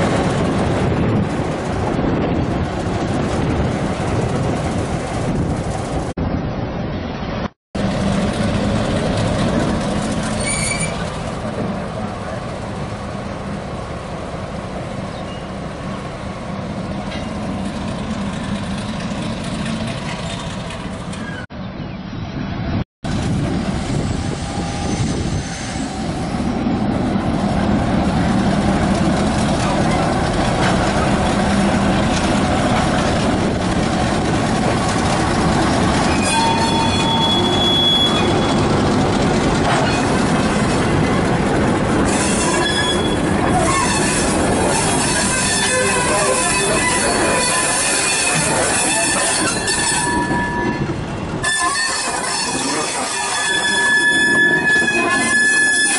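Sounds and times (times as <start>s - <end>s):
train cars rolling on jointed track: 0.0s - 6.2s, 7.8s - 21.5s, 23.1s - 55.9s
diesel locomotive engine: 0.0s - 55.9s
high wheel squeals: 10.3s - 11.2s, 21.1s - 21.5s, 36.0s - 38.7s, 42.1s - 55.9s.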